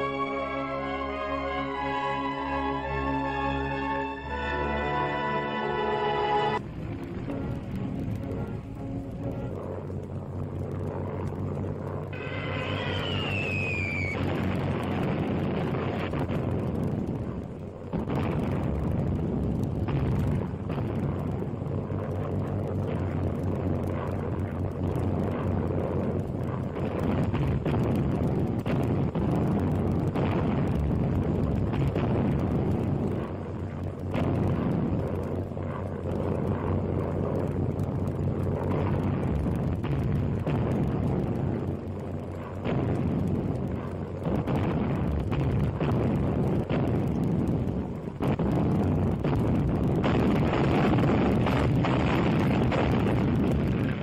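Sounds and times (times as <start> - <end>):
aircraft engines droning: 0.0 - 16.0
bomb explosions: 0.0 - 54.0
heavy rumble: 0.0 - 54.0
falling whistle: 12.2 - 14.3.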